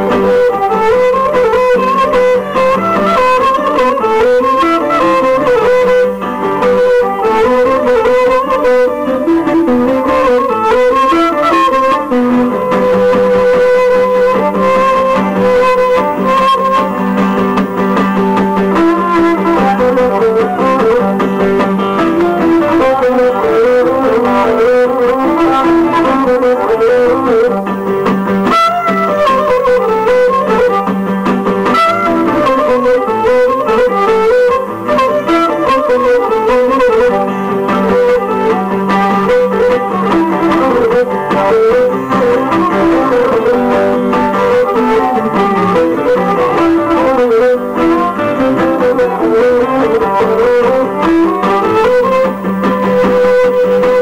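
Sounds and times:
bowed lyra melody: 0:00.0 - 0:54.0
strummed acoustic guitar: 0:00.0 - 0:54.0.

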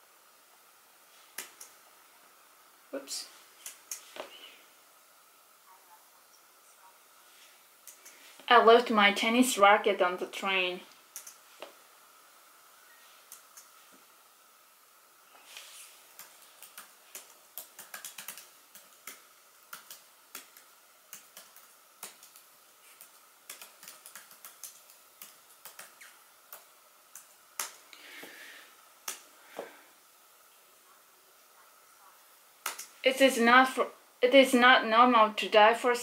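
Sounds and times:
typing on laptop keyboard: 0:16.1 - 0:27.8.

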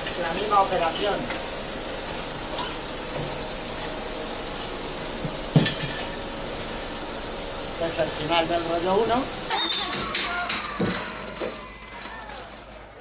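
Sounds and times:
film projector whirring: 0:00.0 - 0:13.0.

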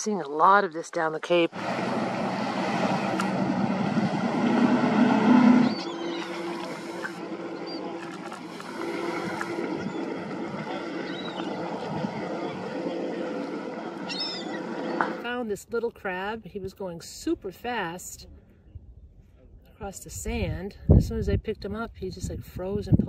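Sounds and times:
motorboat engines passing: 0:01.3 - 0:15.5
hull and wake noise: 0:01.3 - 0:16.5
gulls calling: 0:01.5 - 0:15.2.

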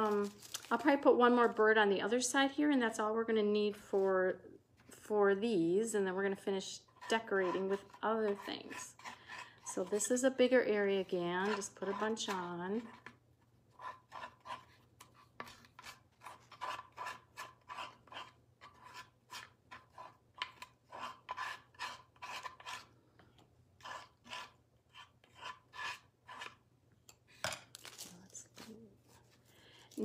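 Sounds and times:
applicator rubbing on wood: 0:07.0 - 0:10.0.

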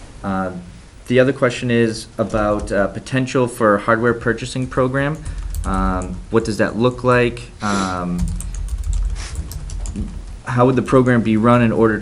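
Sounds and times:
steady low rumble: 0:00.0 - 0:11.3.

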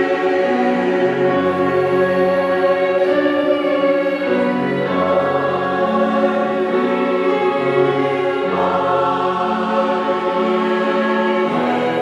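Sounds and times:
choir singing held chords: 0:00.0 - 0:12.0
piano accompaniment: 0:00.0 - 0:12.0.

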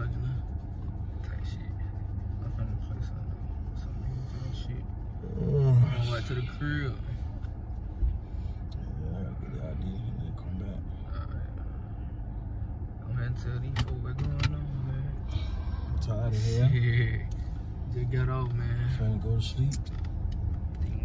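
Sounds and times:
car interior rumble: 0:00.0 - 0:21.0.

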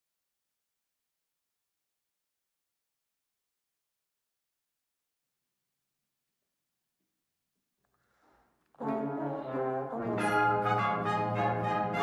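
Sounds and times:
brass band loud held chord: 0:08.8 - 0:12.0.

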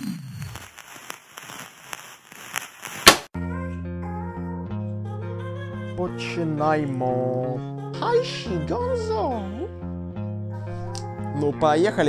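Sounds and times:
crackle and hiss: 0:00.0 - 0:03.3.

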